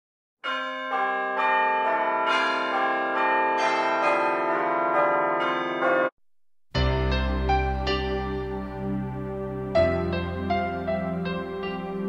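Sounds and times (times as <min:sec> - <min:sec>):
church bells pealing: 0:00.4 - 0:06.1.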